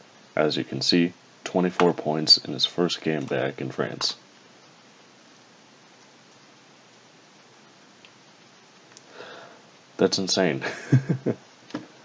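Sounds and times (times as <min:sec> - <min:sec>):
microphone hiss: 0:00.0 - 0:12.0
soft breath: 0:09.0 - 0:09.8.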